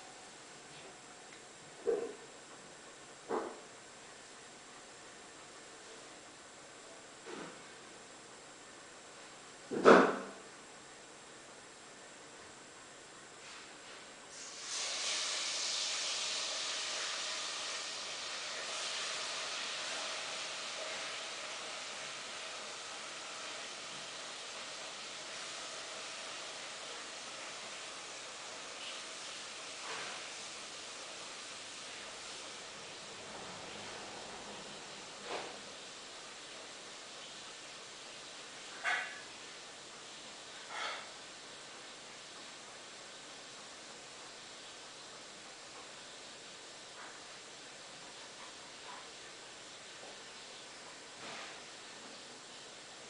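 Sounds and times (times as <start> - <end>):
steady hiss: 0.0 - 53.0.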